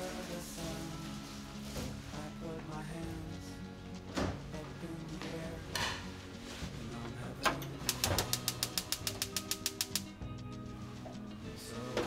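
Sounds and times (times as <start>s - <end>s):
gas burner igniter clicking: 7.4s - 10.1s.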